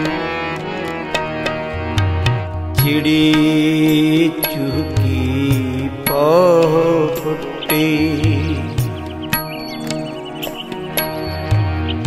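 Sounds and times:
reedy melody: 0.0 - 12.0.

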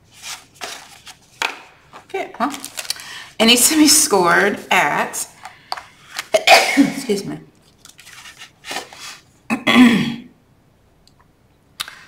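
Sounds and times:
woman coughing: 6.3 - 7.2, 9.5 - 10.3.

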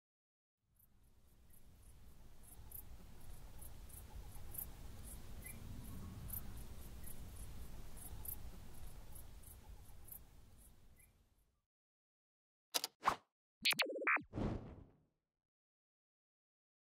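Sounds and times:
insects chirping: 1.2 - 11.1.

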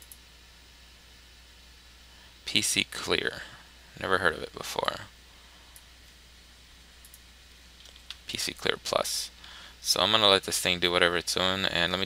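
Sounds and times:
steady hiss: 0.0 - 12.0
computer mouse click: 7.0 - 7.2.

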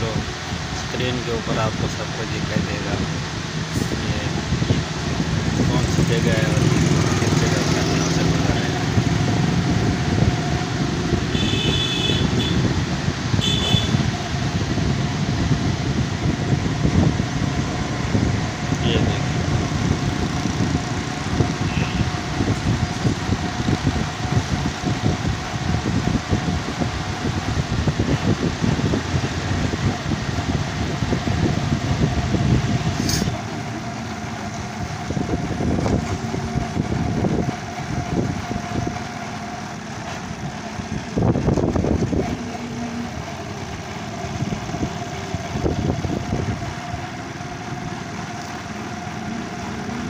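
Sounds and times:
motor trike engine running: 0.0 - 50.0
road noise: 0.0 - 50.0.

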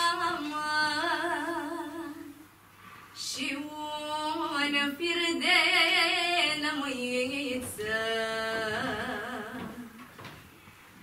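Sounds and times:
woman singing unaccompanied lament: 0.0 - 2.4, 3.2 - 10.1.

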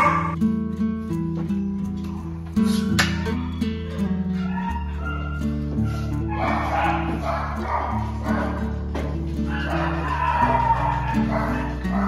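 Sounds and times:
puppies barking and play-fighting: 0.0 - 0.4, 1.9 - 12.0
background music with held notes: 0.0 - 12.0.

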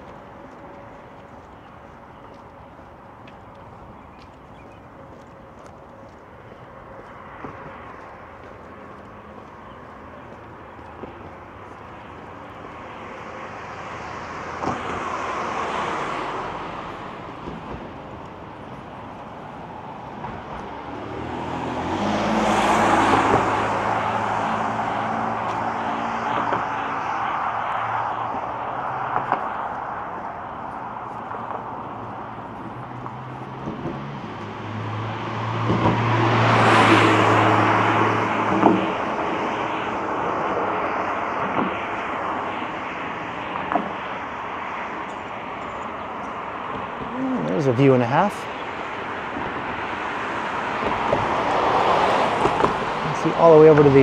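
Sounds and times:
cars passing: 0.0 - 54.0
steady traffic noise: 0.0 - 54.0.

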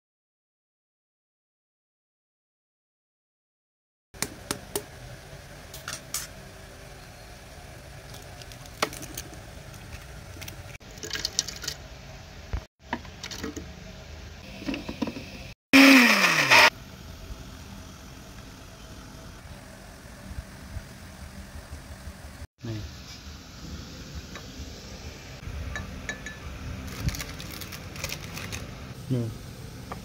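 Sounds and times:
mixer-grinder motor whine: 14.6 - 16.8.

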